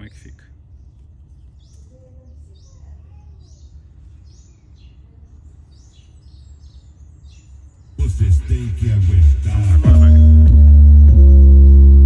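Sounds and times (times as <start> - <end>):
bird chirping: 0.0 - 8.9.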